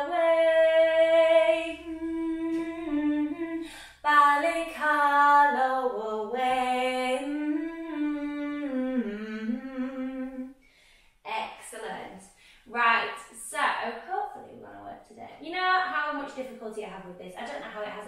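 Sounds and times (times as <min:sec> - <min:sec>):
woman singing unaccompanied: 0:00.0 - 0:10.5.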